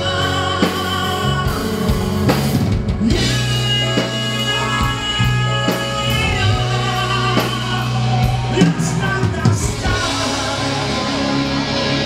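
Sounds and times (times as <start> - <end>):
live rock band playing: 0.0 - 12.0
man singing lead: 0.0 - 12.0.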